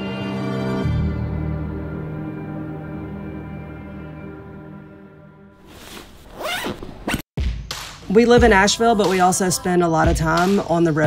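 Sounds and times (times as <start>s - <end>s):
zipper on a nylon bag: 5.6s - 7.2s.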